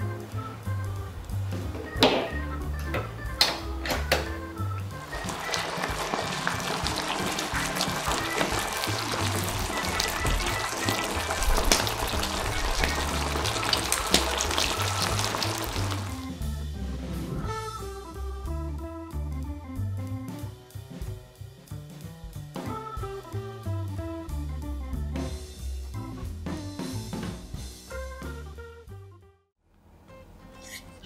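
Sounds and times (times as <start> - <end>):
background music: 0.0 - 29.4
food sizzling in griddle pan: 5.0 - 16.3.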